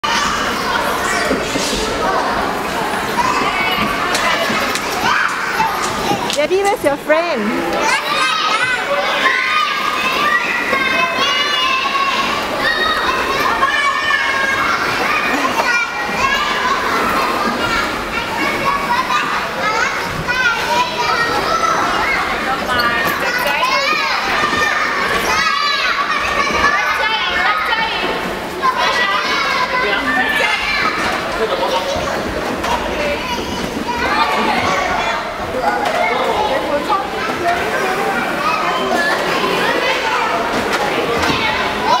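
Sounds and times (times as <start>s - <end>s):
children playing and shouting: 0.0s - 42.0s.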